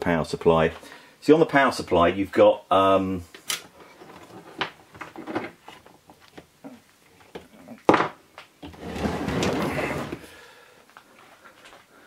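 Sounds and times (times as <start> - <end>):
metal box scraping and rustling: 8.7 - 10.3.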